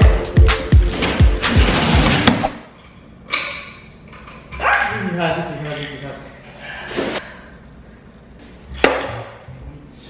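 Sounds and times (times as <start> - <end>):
background music: 0.0 - 2.5.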